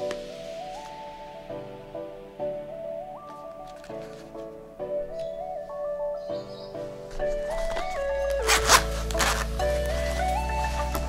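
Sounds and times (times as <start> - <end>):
background music: 0.0 - 11.0
zipper being pulled open: 7.4 - 11.0.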